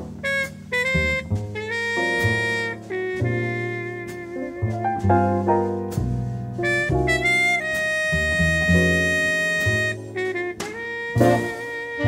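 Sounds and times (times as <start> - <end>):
low bass notes: 0.0 - 12.0
horn playing held melody: 0.2 - 5.5, 6.6 - 12.0.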